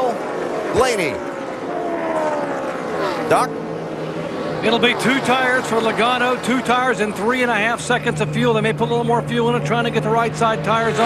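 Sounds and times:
racing car engines revving: 0.0 - 11.0.

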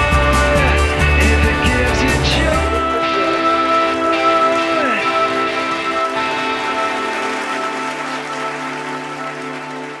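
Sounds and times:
trailer music held chord: 1.2 - 8.6.

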